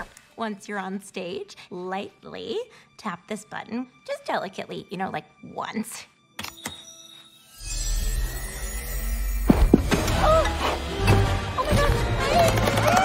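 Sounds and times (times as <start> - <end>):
film score: 0.0 - 13.0.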